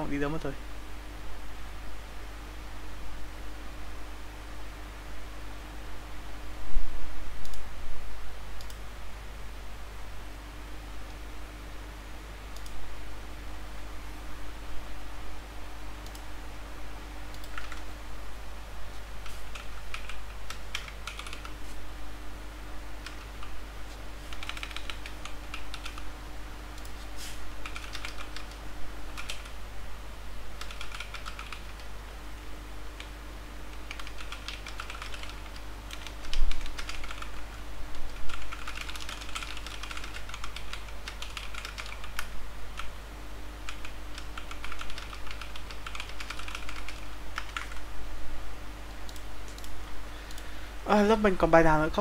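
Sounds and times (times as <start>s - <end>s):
low electrical hum: 0.0s - 52.0s
keyboard typing: 17.3s - 17.9s, 19.2s - 21.6s, 23.0s - 23.6s, 24.2s - 26.1s, 27.6s - 29.6s, 30.6s - 31.9s, 33.0s - 37.5s, 38.1s - 42.9s, 43.6s - 47.8s, 49.1s - 50.4s.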